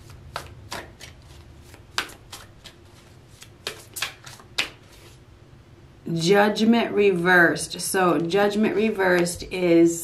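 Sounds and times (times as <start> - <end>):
cards being shuffled: 0.0 - 5.2.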